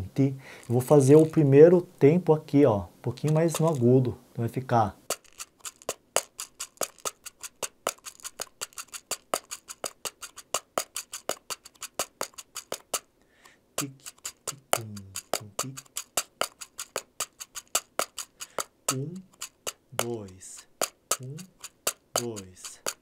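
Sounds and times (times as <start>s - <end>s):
hand drum samba rhythm: 5.1s - 13.0s, 13.8s - 23.0s.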